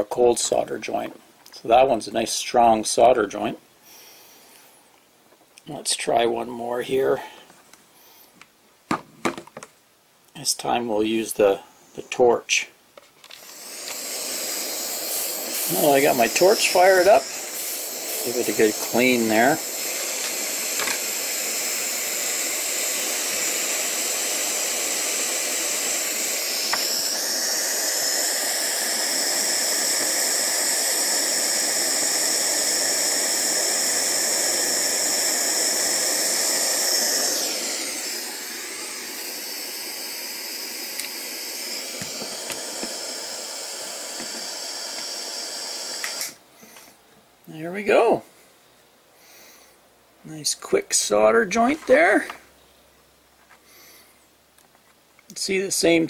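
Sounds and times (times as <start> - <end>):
gas torch hissing: 5.7 - 8.2, 13.2 - 47.0.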